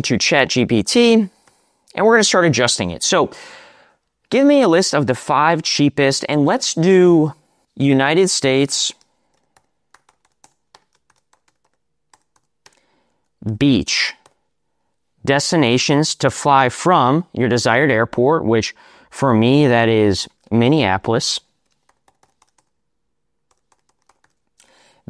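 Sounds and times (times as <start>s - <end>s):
faint keyboard typing: 8.9s - 13.4s, 14.1s - 14.4s, 21.6s - 22.8s, 23.4s - 24.8s.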